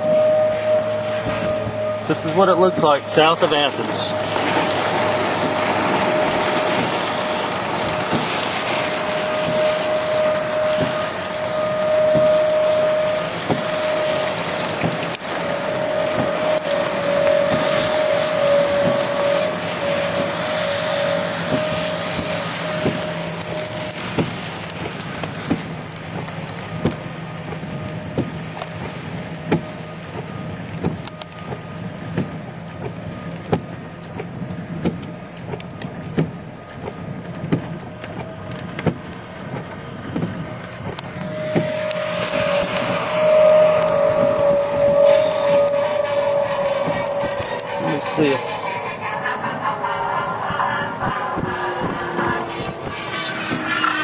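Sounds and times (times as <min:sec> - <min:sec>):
low hum: 0:00.0 - 0:54.0
rain and wind on a vehicle: 0:00.0 - 0:54.0
steady whine: 0:00.0 - 0:54.0
raindrops ticking on a car: 0:02.1 - 0:44.7.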